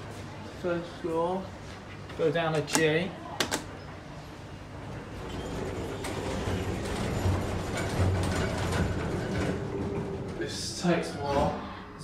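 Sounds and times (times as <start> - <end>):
lift car hum and rumble: 3.7 - 12.0.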